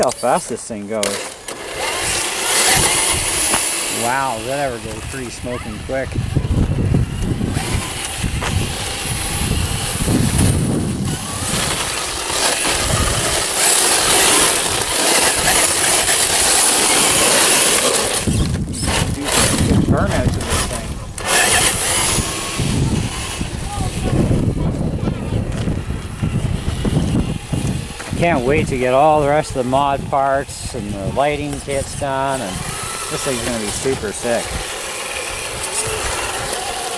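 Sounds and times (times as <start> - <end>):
tyres crunching over gravel: 0.0 - 22.8.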